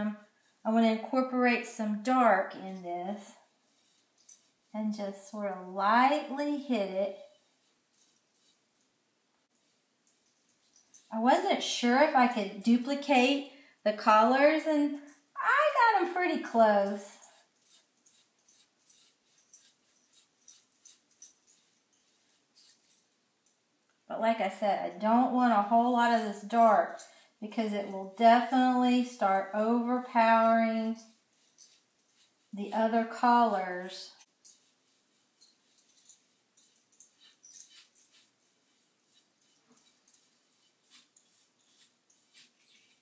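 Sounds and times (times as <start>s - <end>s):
paintbrush scratching on metal: 0.0s - 13.2s, 15.4s - 23.6s, 24.9s - 43.0s.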